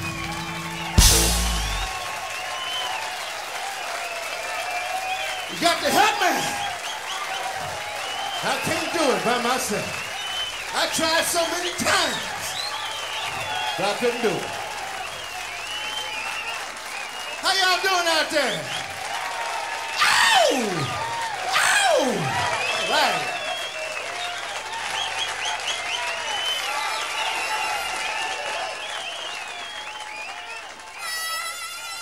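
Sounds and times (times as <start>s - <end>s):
loud whoops: 0.0s - 31.3s
audience applauding and cheering: 0.0s - 32.0s.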